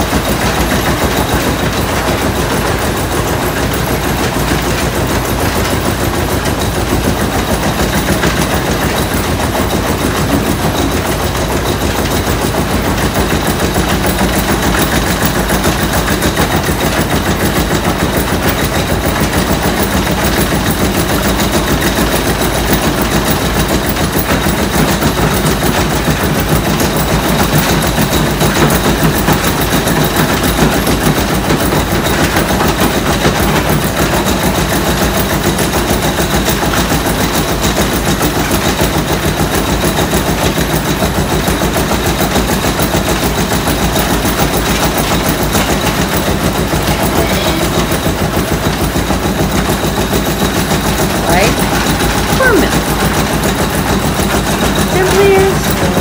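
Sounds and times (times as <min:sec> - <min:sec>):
millstone grinder clattering: 0:00.0 - 0:56.0.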